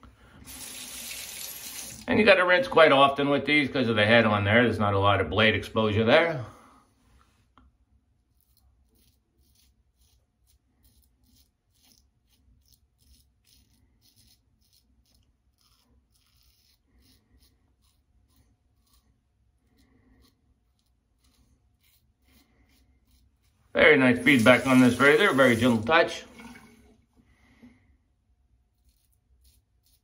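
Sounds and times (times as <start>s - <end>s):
razor scraping stubble: 8.3s - 26.7s, 28.6s - 30.0s.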